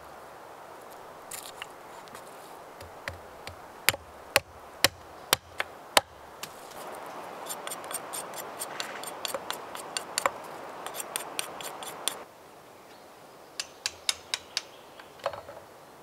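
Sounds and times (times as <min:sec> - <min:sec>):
knife whittling wooden stick: 0:07.4 - 0:12.2.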